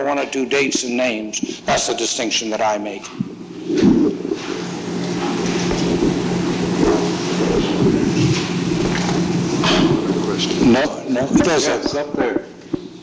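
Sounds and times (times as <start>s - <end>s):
speech: 0.0s - 3.1s, 9.9s - 12.5s
dense low rumbling: 3.0s - 10.8s.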